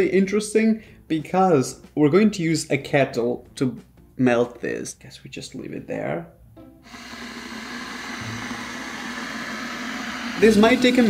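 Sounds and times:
electric kettle heating water: 0:06.8 - 0:11.0.

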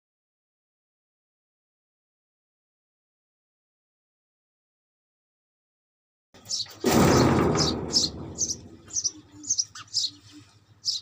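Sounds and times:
small bird chirping: 0:06.4 - 0:06.9, 0:07.5 - 0:11.0.

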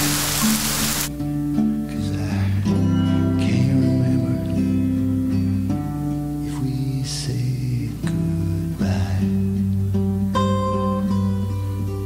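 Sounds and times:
acoustic guitar ballad: 0:00.0 - 0:12.0.

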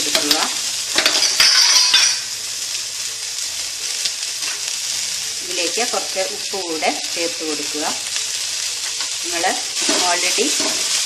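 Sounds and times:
vegetables sizzling in oil: 0:00.0 - 0:11.0
pan clatters: 0:01.0 - 0:02.2.

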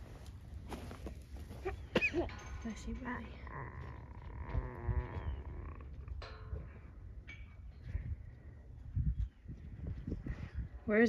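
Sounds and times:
cattle mooing: 0:03.4 - 0:06.1.

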